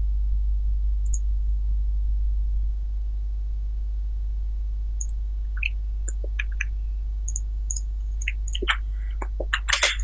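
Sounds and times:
low electrical hum: 0.0s - 10.0s
computer mouse click: 5.0s - 6.7s, 7.3s - 8.8s.

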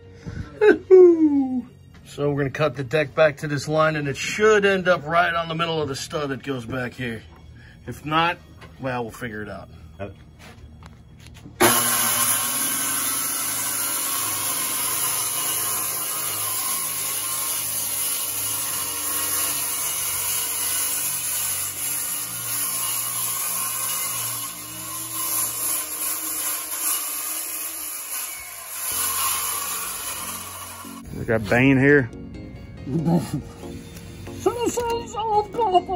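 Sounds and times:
circular saw cutting: 11.6s - 31.8s.

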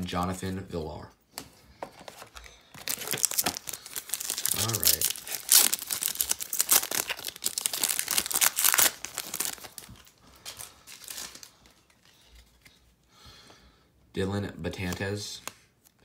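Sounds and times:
foil wrapper tearing and crinkling: 2.8s - 11.8s.

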